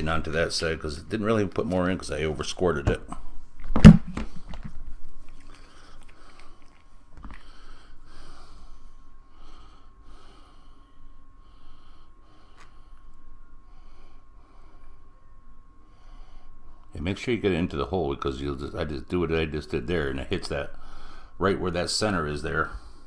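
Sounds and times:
handling thump: 3.7 - 4.4
faint steady high tone: 7.7 - 23.0.

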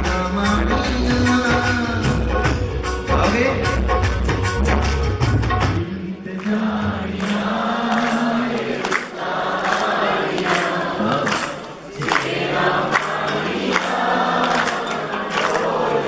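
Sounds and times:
sustained musical accompaniment: 0.0 - 9.2
crowd singing along: 5.8 - 16.0.

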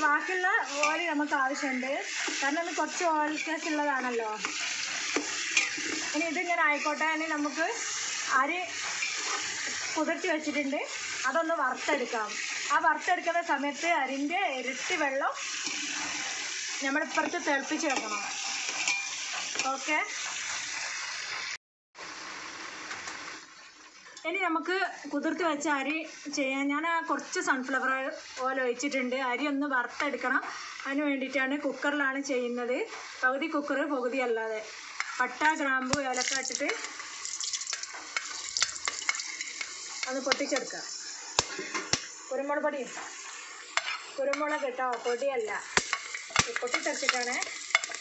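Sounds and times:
chicken sizzling in oil: 0.0 - 24.2, 24.8 - 48.0
spoon stirring: 4.4 - 6.1, 36.2 - 40.6, 45.8 - 48.0.

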